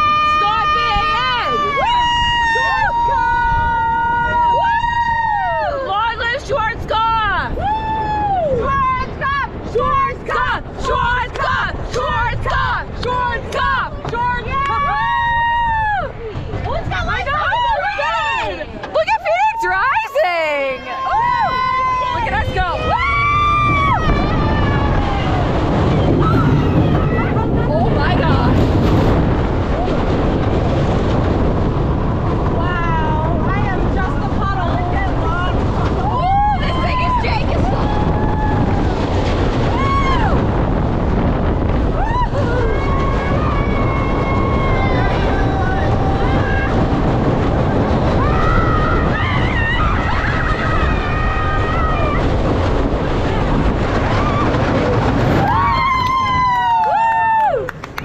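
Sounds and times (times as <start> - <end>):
riders screaming: 0.0 - 6.4, 19.3 - 28.5, 32.5 - 57.7
wind rushing over microphone: 0.0 - 58.0.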